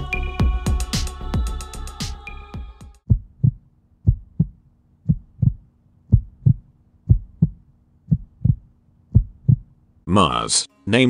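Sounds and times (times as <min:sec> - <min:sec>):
heartbeat thumps: 0:03.0 - 0:09.7.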